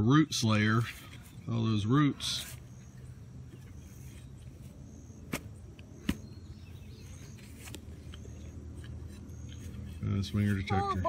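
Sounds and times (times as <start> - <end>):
low background noise: 0.0 - 11.0
shovel chopping into soil: 5.3 - 6.3.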